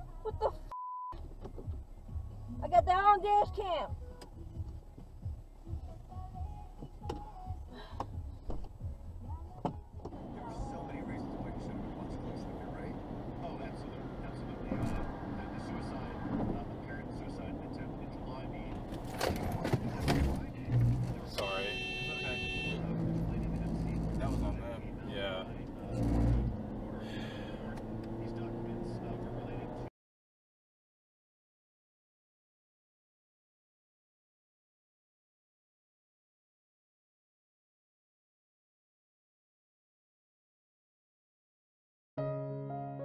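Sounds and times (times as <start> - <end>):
road and tyre noise inside car: 0.0 - 29.9
car horn: 21.3 - 22.9.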